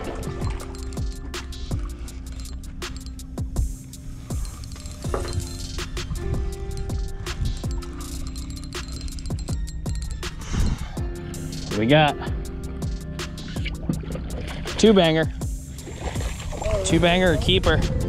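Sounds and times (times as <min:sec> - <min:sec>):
background music with held tones: 0:00.0 - 0:18.0.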